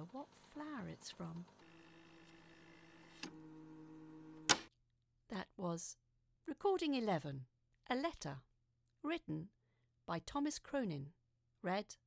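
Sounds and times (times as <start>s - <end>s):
cassette recorder hum: 1.6s - 4.7s.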